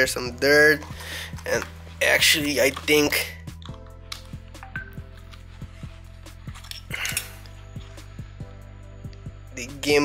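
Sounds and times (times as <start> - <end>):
music with bass-drum beat: 3.4 - 10.0.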